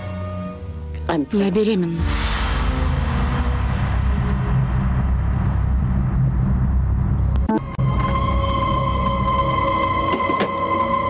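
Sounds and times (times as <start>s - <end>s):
loud low rumble: 2.0s - 9.7s.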